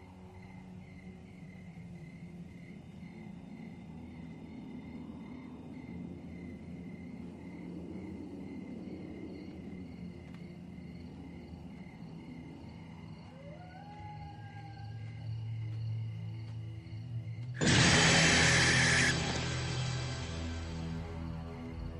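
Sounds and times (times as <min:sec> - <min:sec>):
crickets chirping: 0:00.0 - 0:21.9
rising wail: 0:17.6 - 0:20.9
low sustained drone: 0:17.6 - 0:21.9.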